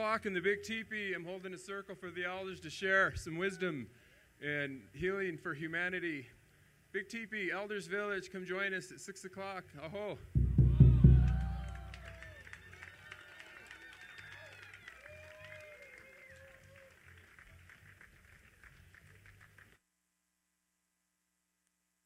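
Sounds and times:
low bass note ringing: 0:10.3 - 0:12.1
audience clapping and whooping: 0:10.7 - 0:19.7.

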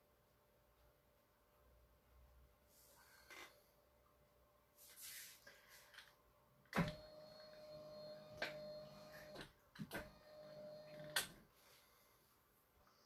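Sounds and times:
electric appliance humming: 0:06.7 - 0:11.4.

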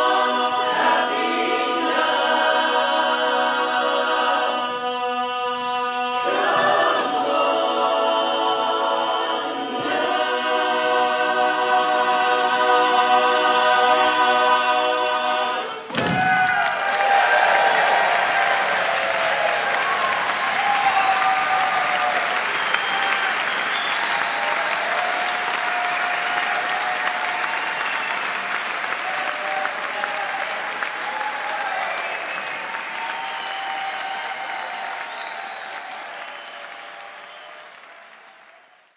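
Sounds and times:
barbershop chorus holding chord: 0:00.0 - 0:15.9
audience applause: 0:15.2 - 0:38.9
cheering shouts and whoops: 0:15.9 - 0:38.8.

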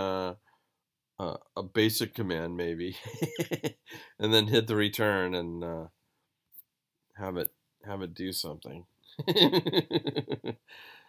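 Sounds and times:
person laughing: 0:03.0 - 0:04.1, 0:09.2 - 0:10.7.

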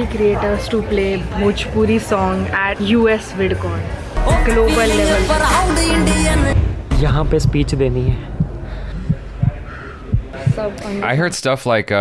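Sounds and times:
heartbeat thumps: 0:06.3 - 0:10.8.

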